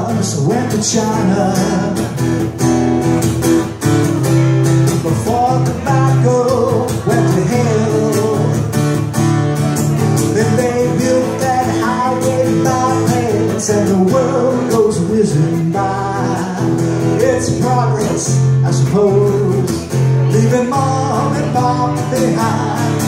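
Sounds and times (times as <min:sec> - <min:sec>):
man singing: 0:00.0 - 0:02.7, 0:03.8 - 0:23.0
acoustic guitar strumming: 0:00.0 - 0:23.0.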